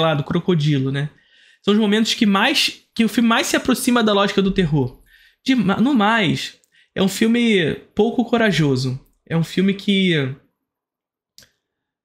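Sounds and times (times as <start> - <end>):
man speaking: 0.0 - 10.5.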